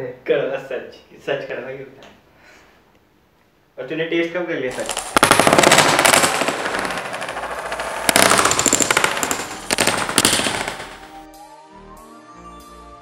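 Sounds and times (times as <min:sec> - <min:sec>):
wooden coins clattering on board: 0:04.7 - 0:11.2
music: 0:11.0 - 0:13.0.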